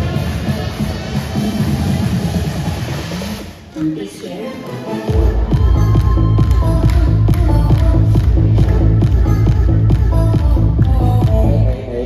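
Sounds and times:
electronic disco dance music: 0.0 - 12.0.

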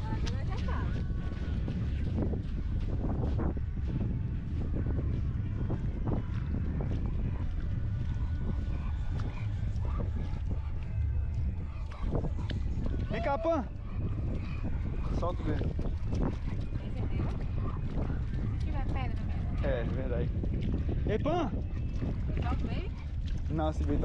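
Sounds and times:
steps and splashes in shallow water: 0.0 - 24.0
wind rumbling on microphone: 0.0 - 24.0.

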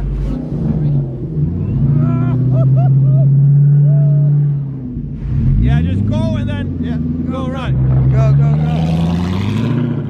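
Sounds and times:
car engine revving: 0.0 - 10.0.

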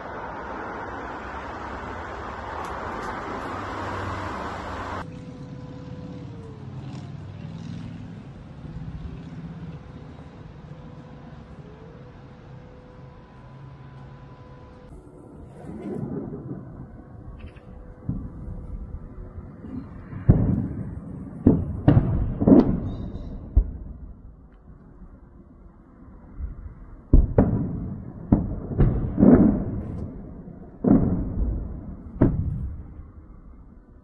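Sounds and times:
distant explosion rumble: 14.9 - 34.0.

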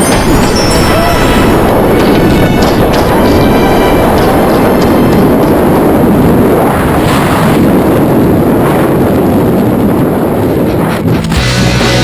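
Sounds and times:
wind buffeting microphone: 0.0 - 11.3.

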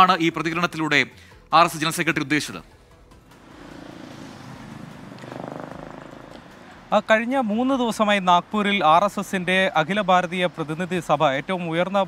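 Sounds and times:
street traffic: 0.0 - 12.0
vehicle engine running: 2.9 - 11.5.

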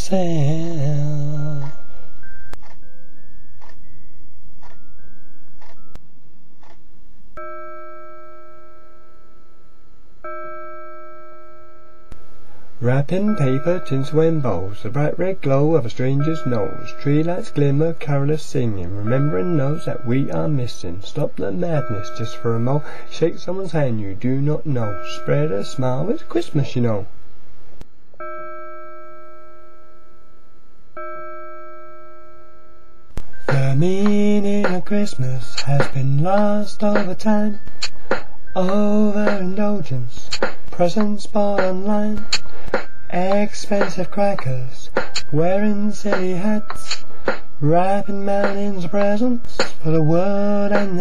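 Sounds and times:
bell-like chime ringing: 7.4 - 26.9, 28.2 - 40.2.

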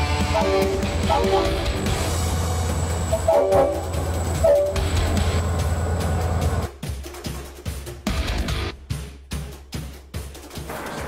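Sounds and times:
diesel locomotive engine rumble: 0.0 - 6.7
train horn: 0.2 - 2.0, 3.1 - 5.0.

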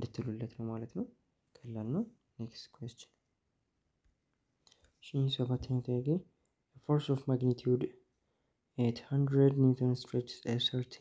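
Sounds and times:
man speaking: 0.0 - 3.2, 5.0 - 8.0, 8.8 - 11.0.

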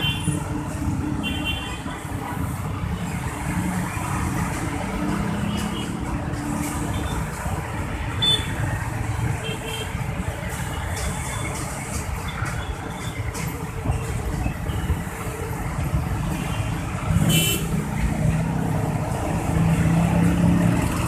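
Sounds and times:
traffic engines idling: 0.0 - 21.0.

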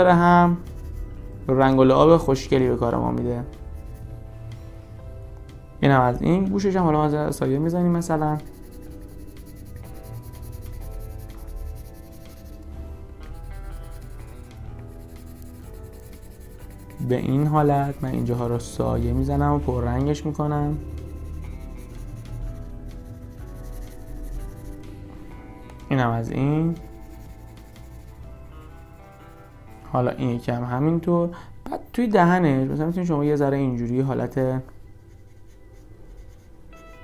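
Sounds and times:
background music with sustained tones: 0.0 - 37.0
pencil scratching on paper: 3.4 - 4.1, 7.5 - 25.0, 26.6 - 29.8, 34.9 - 36.9.

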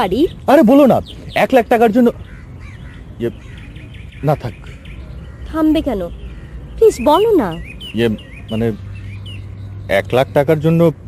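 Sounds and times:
birds chirping: 0.0 - 11.0.

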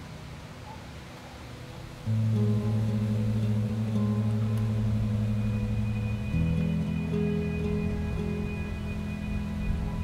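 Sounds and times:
sustained low music notes: 1.9 - 10.0.

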